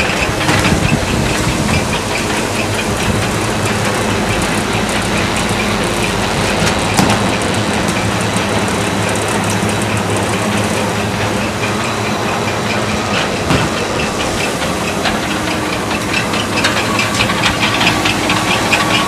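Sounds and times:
belt conveyor motor hum: 0.0 - 19.0
moving belt rushing: 0.0 - 19.0
rapid ticking: 0.0 - 19.0.

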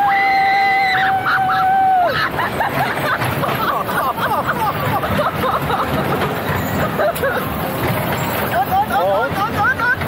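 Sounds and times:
roller coaster rumbling on track: 0.0 - 10.0
riders laughing and calling out: 1.0 - 10.0.

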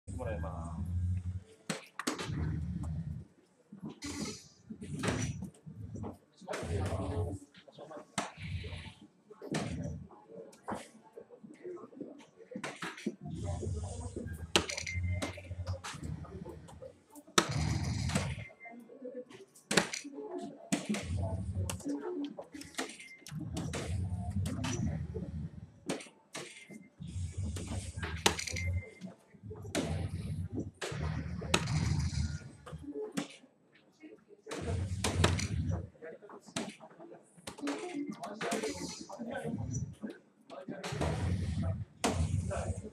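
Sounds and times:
people talking: 0.1 - 0.9, 5.0 - 25.3, 34.0 - 42.9
darts clicking on dartboard: 12.6 - 16.1, 19.6 - 25.0.

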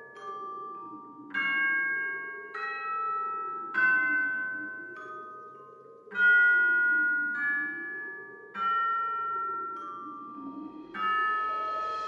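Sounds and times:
chime-like mallet notes: 0.0 - 12.0.

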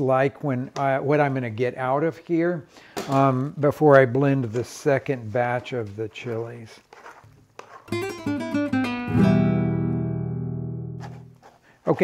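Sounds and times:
acoustic guitar plucked and strummed: 7.9 - 11.5.

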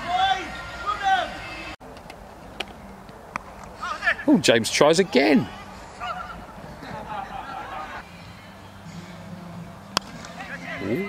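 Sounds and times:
distant wavering calls: 2.4 - 11.0.

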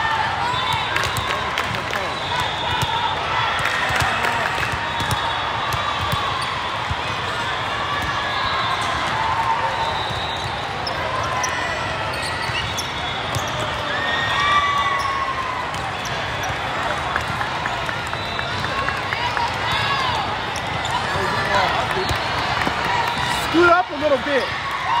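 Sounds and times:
sneakers squeaking on court: 9.9 - 13.9, 19.7 - 24.6
overlapping voices and shouts: 16.9 - 25.0.

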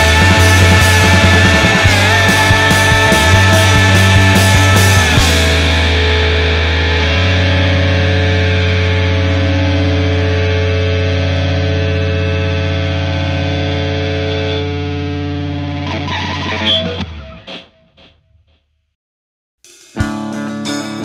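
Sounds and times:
distorted guitar and bass chord ringing: 0.0 - 18.1, 19.7 - 21.0.

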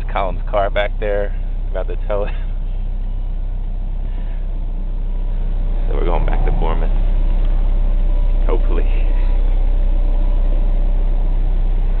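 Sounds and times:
engine and road noise in cab: 0.0 - 12.0.

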